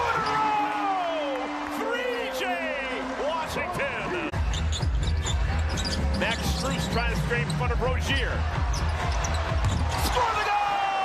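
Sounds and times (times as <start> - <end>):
arena music: 0.0 - 11.0.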